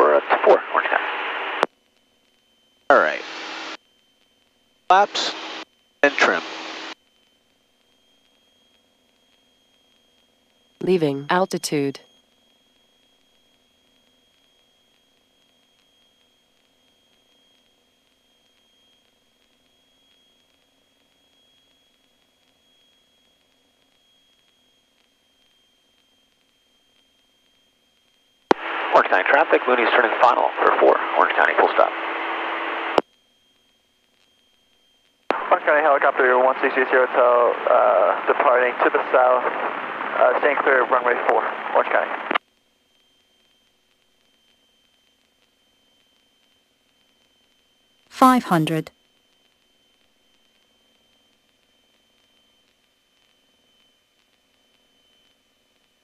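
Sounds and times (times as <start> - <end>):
radio voice transmissions: 0.0 - 1.6, 2.9 - 3.7, 4.9 - 6.9, 28.6 - 31.9, 35.3 - 42.4, 48.2 - 48.9
faint steady high tone: 2.0 - 31.9, 42.9 - 56.0.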